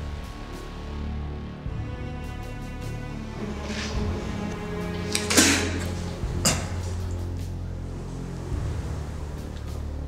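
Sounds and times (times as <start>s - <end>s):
film score low bass tones: 0.0s - 10.0s.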